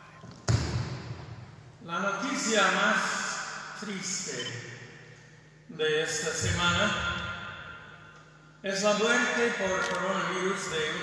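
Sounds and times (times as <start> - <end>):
man speaking: 1.8 - 4.8, 5.7 - 7.3, 8.6 - 11.0.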